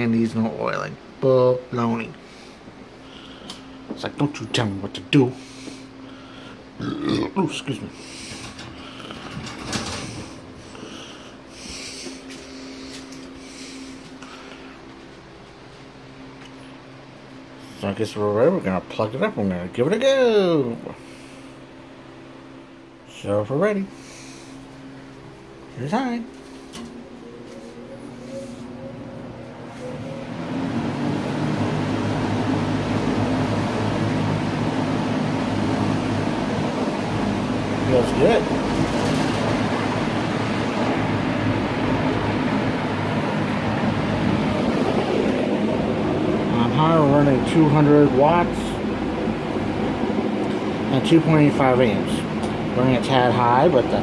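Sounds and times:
appliance electrical hum: 0:00.0 - 0:54.0
box fan whirring: 0:00.0 - 0:54.0.

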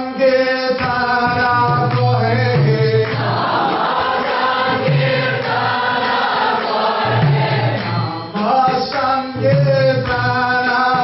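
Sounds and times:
man singing lead: 0:00.0 - 0:04.4, 0:08.1 - 0:11.0
congregation chanting: 0:02.3 - 0:09.3.

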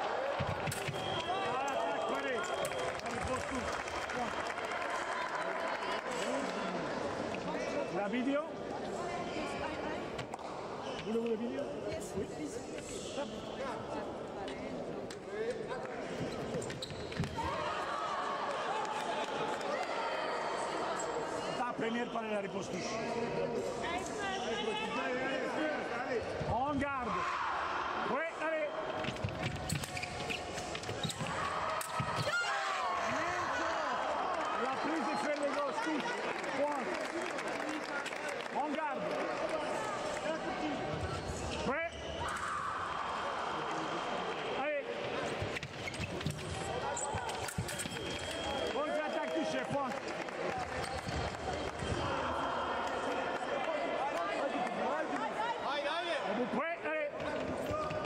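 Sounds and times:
voices echoing in a hall: 0:00.0 - 0:58.0.

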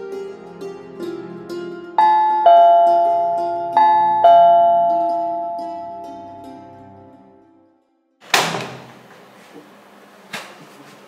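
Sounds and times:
soft background music: 0:00.0 - 0:07.6
two-tone doorbell chime: 0:02.0 - 0:06.7.

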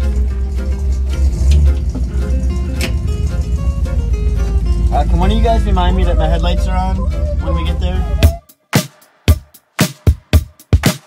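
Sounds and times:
music with heavy bass line: 0:00.0 - 0:11.0.

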